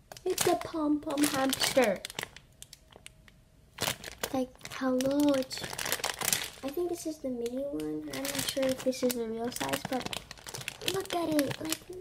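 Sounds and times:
plastic bag crinkling: 0.0 - 12.0
plastic bag rustle: 0.2 - 3.1, 3.8 - 12.0.

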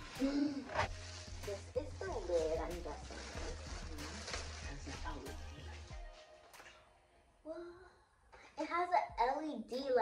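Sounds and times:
background music with bass line: 0.0 - 6.7
plastic wrapping crinkling: 0.0 - 6.8.

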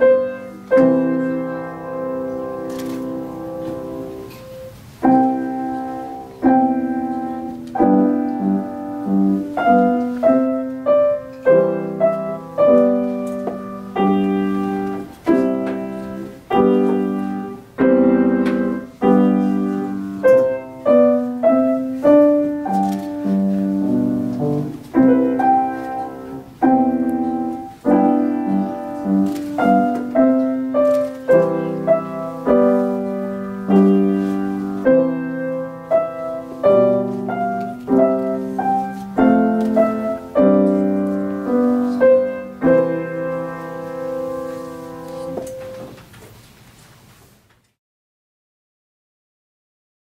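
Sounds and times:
grand piano chords: 0.0 - 46.0.

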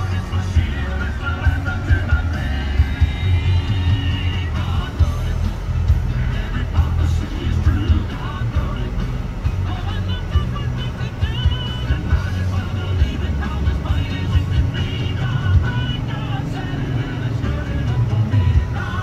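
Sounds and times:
engine and road rumble: 0.0 - 19.0
music on car radio: 0.0 - 19.0.

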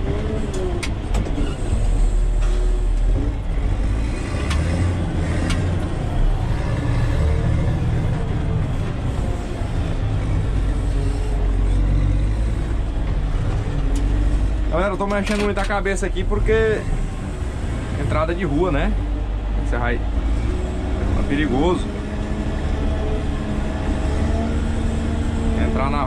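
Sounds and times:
diesel engine running: 0.0 - 26.0.

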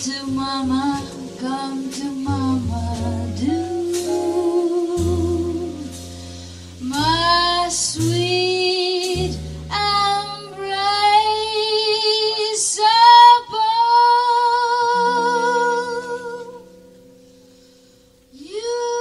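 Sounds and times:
woman singing jazz ballad: 0.0 - 17.0, 18.3 - 19.0
jazz band with double bass: 0.0 - 19.0.

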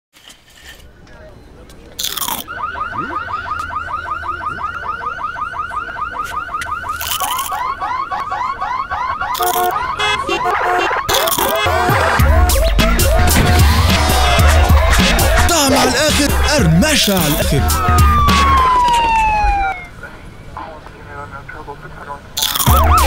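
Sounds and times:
tortilla chips crunching: 2.0 - 2.5, 6.9 - 7.6, 9.4 - 9.8, 11.1 - 11.6, 22.4 - 22.8
rising whooping car alarm: 2.4 - 19.9, 22.7 - 23.0
stepped beeping alarm tones: 2.4 - 19.9, 22.6 - 23.0
low sweeping car alarm: 2.4 - 20.0, 22.7 - 23.0.

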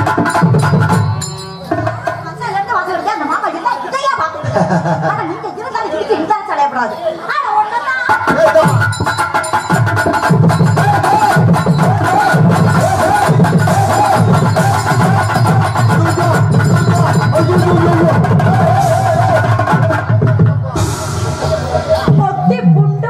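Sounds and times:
drum kit and hand drums: 0.0 - 2.8, 8.1 - 23.0
ornamented melody line: 9.0 - 20.0.

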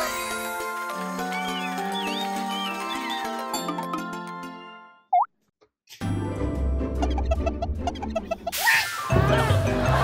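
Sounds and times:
background music: 0.0 - 5.1, 6.0 - 10.0.

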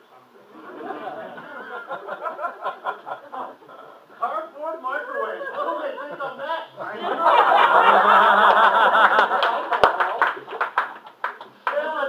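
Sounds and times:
audience laughing: 0.5 - 4.0, 5.0 - 10.6
scattered clapping: 9.0 - 12.0.

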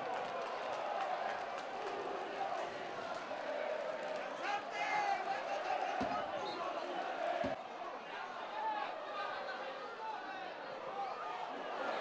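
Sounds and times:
stadium crowd shouting: 0.0 - 12.0.

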